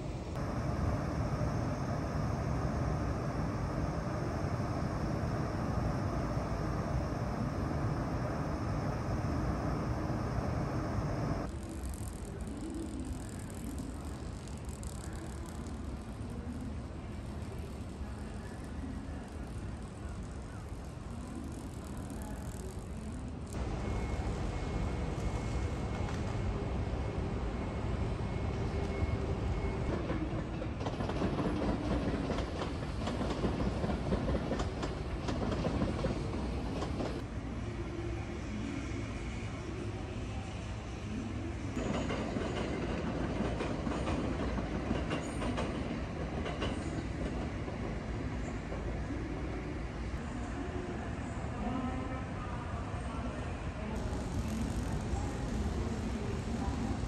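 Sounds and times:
faint steady whine: 0:00.0 - 0:30.0, 0:48.0 - 0:57.0
city background noise: 0:00.0 - 0:57.0
train running: 0:00.0 - 0:57.0.

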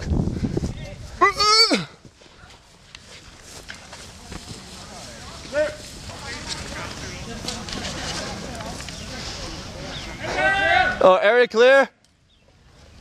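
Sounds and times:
man's wordless cry: 0:01.2 - 0:02.0.

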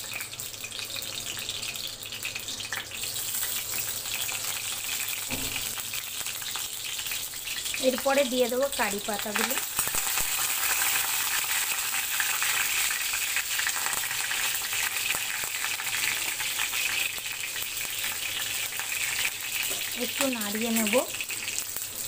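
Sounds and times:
seeds sizzling in hot oil: 0:00.0 - 0:22.0
small crackling pops: 0:09.3 - 0:10.4.

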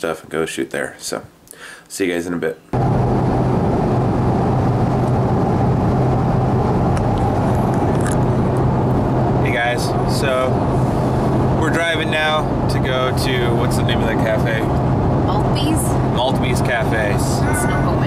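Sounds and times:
car road and engine noise: 0:02.8 - 0:18.0
voices calling out: 0:17.4 - 0:18.0.

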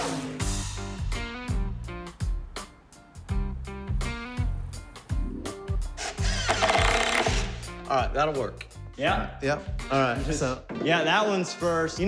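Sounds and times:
music with bass beat: 0:00.0 - 0:06.0
cordless drill driving screw: 0:06.0 - 0:07.6.

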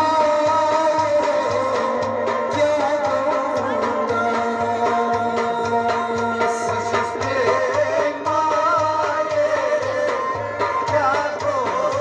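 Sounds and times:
harmonium chords and melody: 0:00.0 - 0:12.0
person singing: 0:00.0 - 0:12.0.

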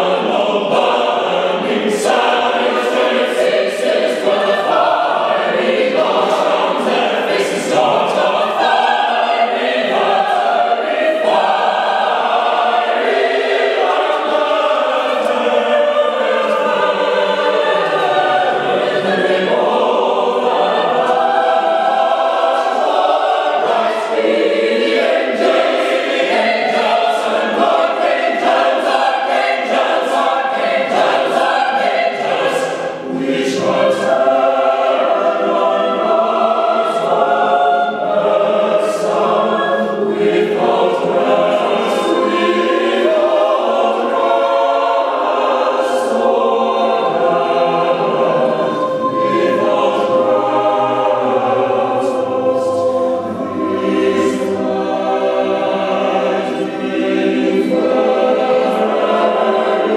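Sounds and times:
mixed choir singing unaccompanied: 0:00.0 - 0:59.9.

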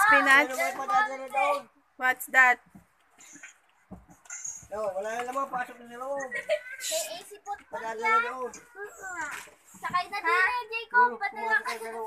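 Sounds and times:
child's voice: 0:06.6 - 0:12.0.

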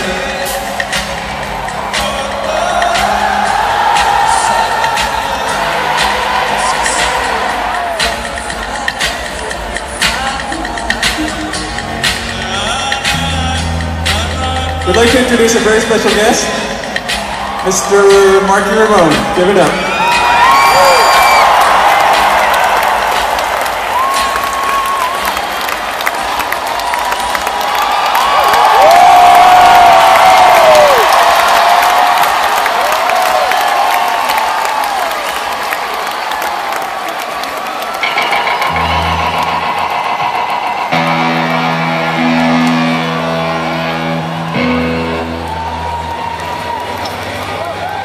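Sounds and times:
crowd cheering and whooping: 0:00.4 - 0:08.8, 0:19.7 - 0:48.0
rock band guitar and bass chords: 0:07.1 - 0:17.5, 0:38.0 - 0:47.6.

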